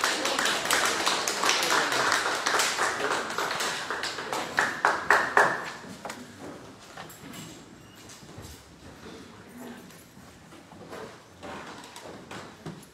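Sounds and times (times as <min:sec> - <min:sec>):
people clapping: 0:00.0 - 0:06.2.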